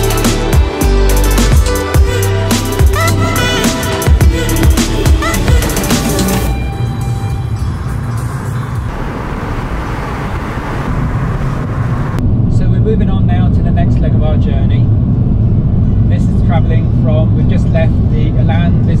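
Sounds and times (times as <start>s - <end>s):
music track: 0.0s - 9.5s
car engine and road rumble: 4.0s - 19.0s
wind and tyre noise: 6.5s - 19.0s.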